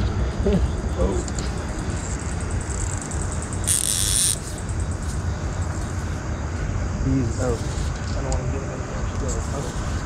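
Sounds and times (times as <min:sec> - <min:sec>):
fishing reel drag buzzing: 0:01.9 - 0:05.2.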